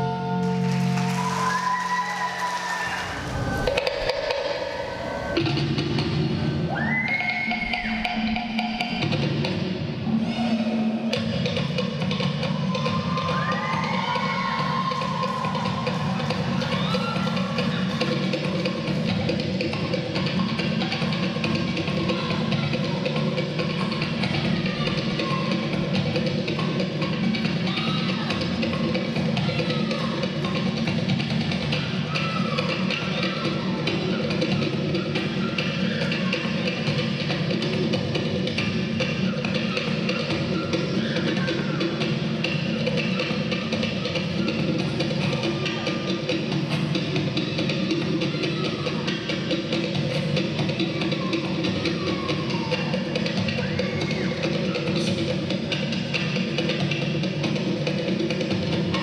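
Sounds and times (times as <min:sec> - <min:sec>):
short arching high sounds: 0:00.6 - 0:06.0
fast slit drum music: 0:11.2 - 0:59.0.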